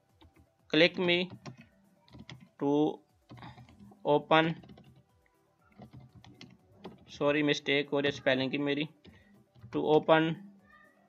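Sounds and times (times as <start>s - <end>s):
computer keyboard typing: 1.0s - 2.6s, 3.2s - 5.1s, 5.7s - 7.2s.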